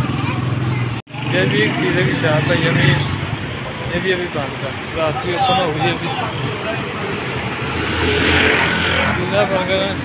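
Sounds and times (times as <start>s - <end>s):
street traffic noise: 0.0s - 10.0s
voices: 0.0s - 10.0s
small motorcycle engine passing: 7.7s - 9.3s.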